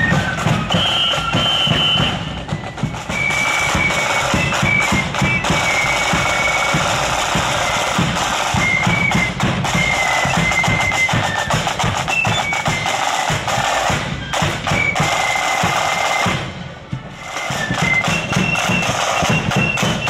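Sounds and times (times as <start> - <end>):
flutes playing high melody: 0.0 - 20.0
rolling snare drums: 0.0 - 20.0
steady drumbeats: 0.0 - 20.0.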